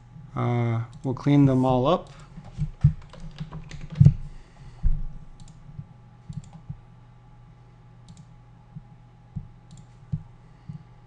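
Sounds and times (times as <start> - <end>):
keyboard and mouse clicks: 2.0 - 4.2, 5.4 - 5.6, 6.3 - 6.7, 8.1 - 8.3, 9.4 - 10.2.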